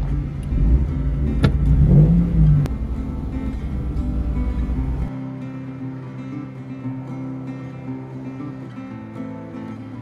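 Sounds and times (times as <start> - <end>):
car engine running and revving: 0.0 - 5.1.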